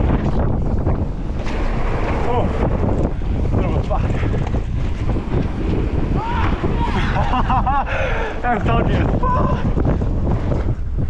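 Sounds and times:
bike knocks and rattles: 0.0s - 7.8s
bike tyres rolling on dirt: 0.0s - 11.0s
wind buffeting microphone: 0.0s - 11.0s.

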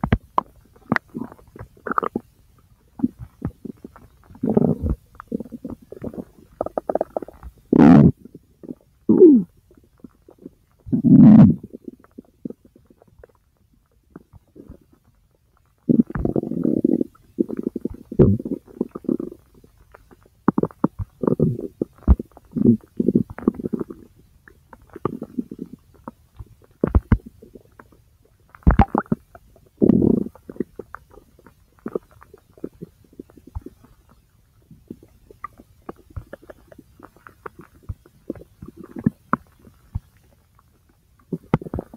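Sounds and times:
bowel gurgles and pops: 0.0s - 2.3s, 3.0s - 9.4s, 15.9s - 34.2s, 34.8s - 40.2s, 41.2s - 41.9s.

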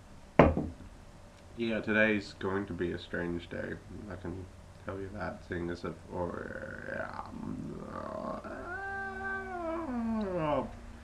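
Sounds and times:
low murmur: 1.5s - 11.0s
man wailing: 6.3s - 10.8s.

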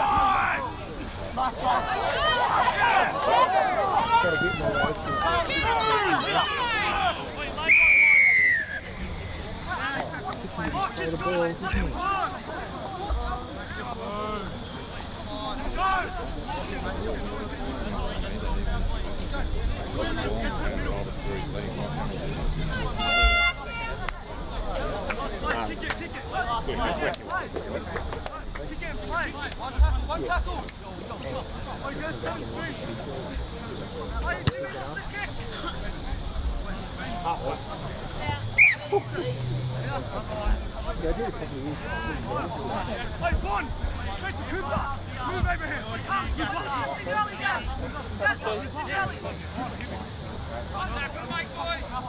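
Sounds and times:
people shouting: 0.0s - 8.7s, 22.7s - 24.1s
people calling out and talking: 0.0s - 52.0s
referee's whistle: 7.6s - 9.1s, 23.0s - 23.7s, 38.6s - 38.9s.

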